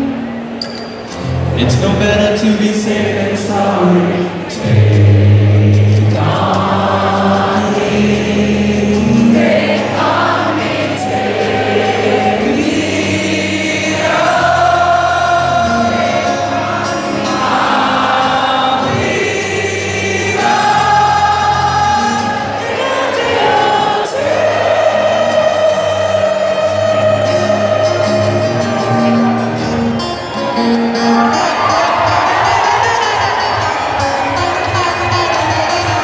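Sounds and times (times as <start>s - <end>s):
acoustic guitar: 0.0s - 36.0s
crowd singing together: 0.0s - 36.0s.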